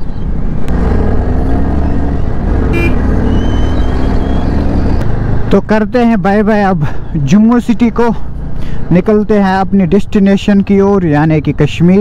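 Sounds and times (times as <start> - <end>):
motorcycle engine running: 0.7 - 5.5.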